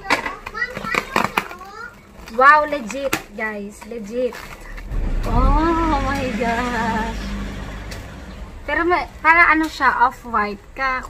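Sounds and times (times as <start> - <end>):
child's voice: 0.0 - 2.0
plastic wrap and tape tearing: 0.1 - 4.9.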